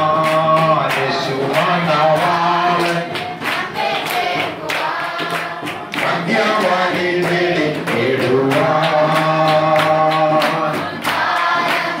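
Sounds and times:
group of women singing: 0.0 - 12.0.

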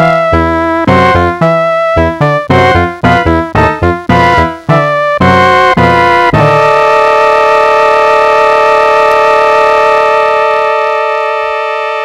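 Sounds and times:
held electronic keyboard tone: 0.0 - 12.0.

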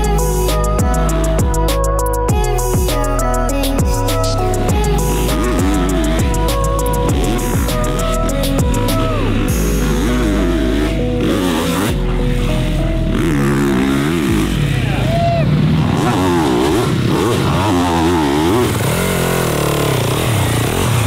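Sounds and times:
dirt bike engines revving: 0.0 - 21.0
music: 0.0 - 21.0.

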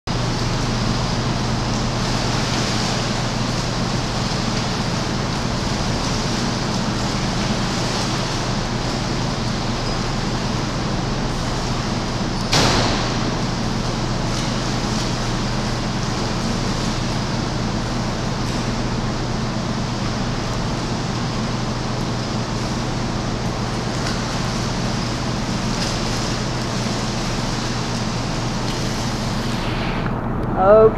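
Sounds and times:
low hum: 0.1 - 30.9
sharp knock: 12.5 - 13.2
water splashing from swimmer kicking: 20.0 - 29.5.

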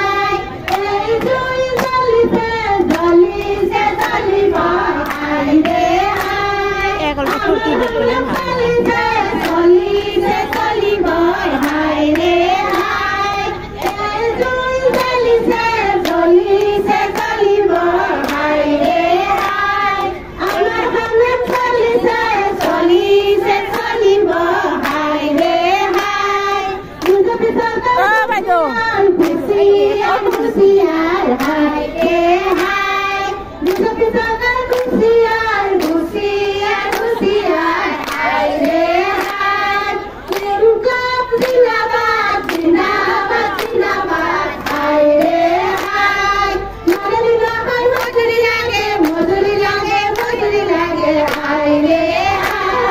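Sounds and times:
women singing together: 0.0 - 52.9
hand-clapping: 0.2 - 52.9.

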